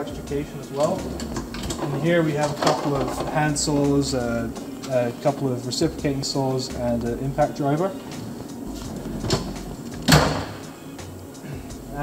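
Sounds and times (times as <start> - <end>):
metal drawer sliding shut: 0.8 - 3.4, 8.1 - 10.7
drawer banging closed: 8.8 - 10.6.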